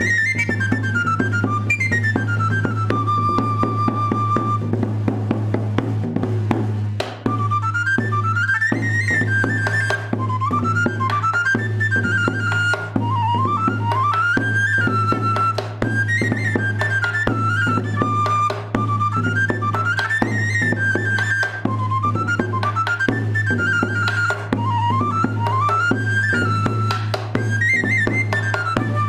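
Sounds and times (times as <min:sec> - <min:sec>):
shrill pipe melody: 0:00.0 - 0:05.0, 0:07.3 - 0:29.0
stick-beaten drum strokes: 0:00.0 - 0:29.0.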